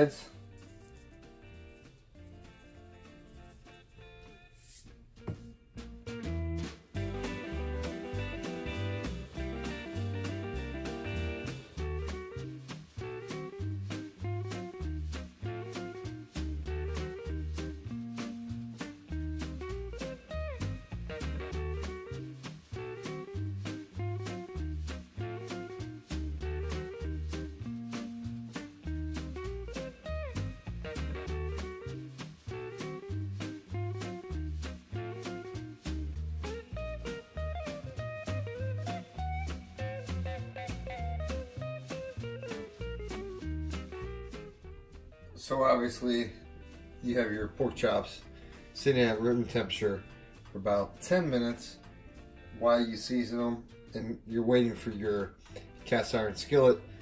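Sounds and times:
swing jazz with guitar: 0:00.0 - 0:57.0.

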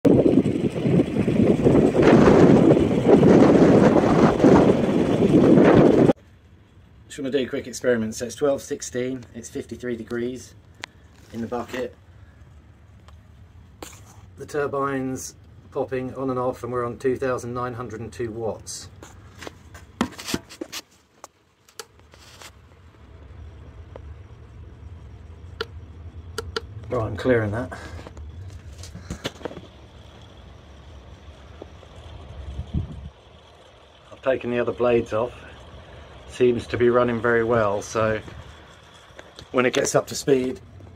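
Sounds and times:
wind buffeting microphone: 0:00.0 - 0:06.2, 0:32.4 - 0:33.3
low rumble: 0:00.0 - 0:07.1, 0:22.6 - 0:40.9
hands clicking and tapping panel: 0:26.4 - 0:26.7.

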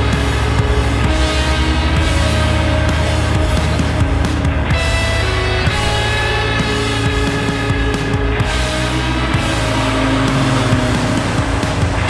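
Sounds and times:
rock music: 0:00.0 - 0:12.0
sports car driving past: 0:08.7 - 0:12.0.

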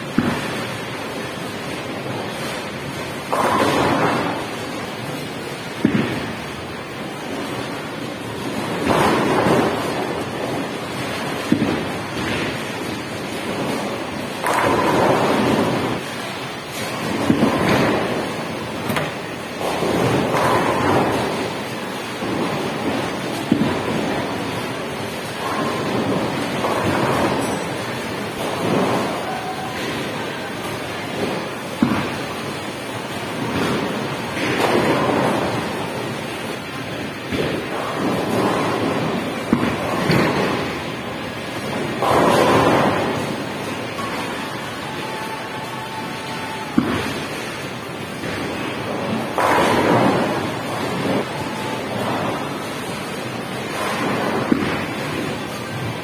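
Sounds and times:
constant noisy background: 0:00.0 - 0:56.0
bowling balls rolling: 0:00.1 - 0:56.0
bowling pins struck: 0:49.3 - 0:51.3.

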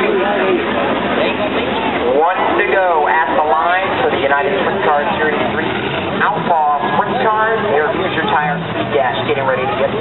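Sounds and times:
crowd voices: 0:00.0 - 0:10.0
race car engines revving: 0:00.0 - 0:10.0.

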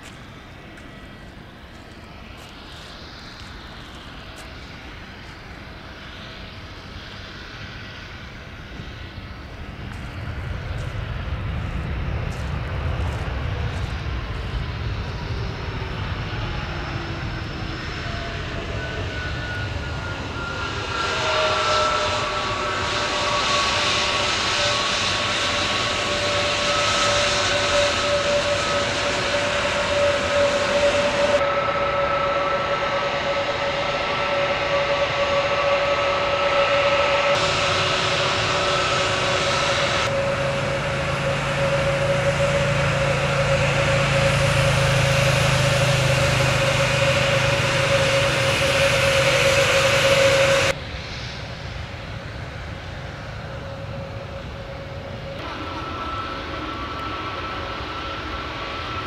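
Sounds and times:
jet engines roaring and whining: 0:00.0 - 0:59.0.

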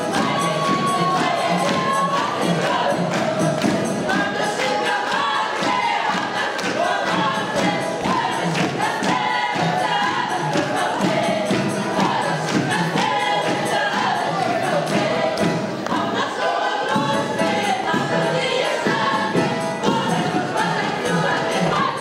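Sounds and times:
folk choir singing: 0:00.0 - 0:22.0
percussive beat: 0:00.0 - 0:22.0.

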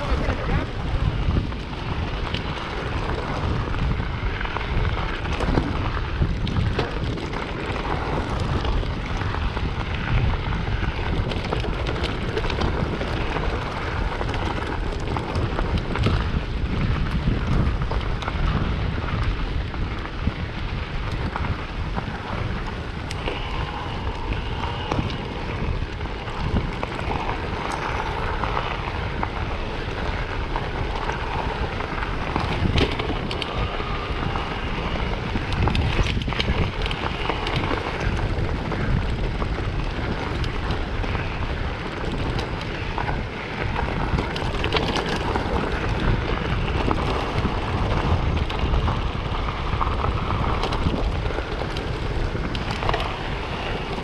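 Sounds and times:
bike rattling: 0:00.0 - 0:54.0
tyres crunching on gravel: 0:00.0 - 0:54.0
wind buffeting microphone: 0:00.0 - 0:54.0.

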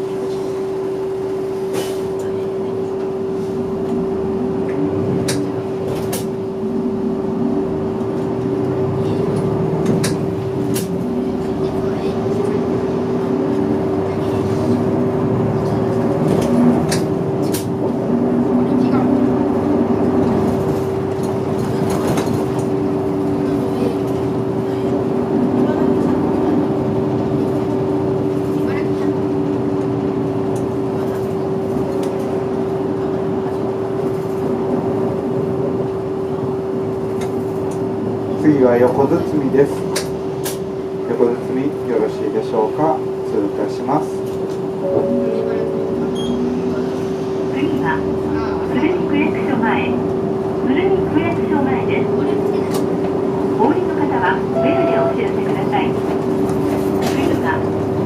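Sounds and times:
bus engine rising and falling: 0:00.0 - 0:58.0
steady whine: 0:44.8 - 0:48.2.

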